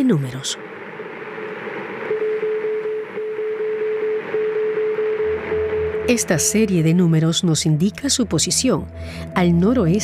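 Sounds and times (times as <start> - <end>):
radio static hiss: 0.0 - 6.5
morse code tone beeps: 2.1 - 7.0.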